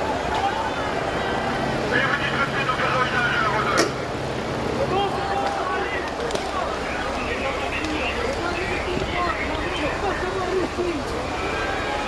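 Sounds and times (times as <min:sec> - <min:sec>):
crowd shouting: 0:00.0 - 0:03.6, 0:04.7 - 0:12.0
heavy vehicle engine humming: 0:00.0 - 0:12.0.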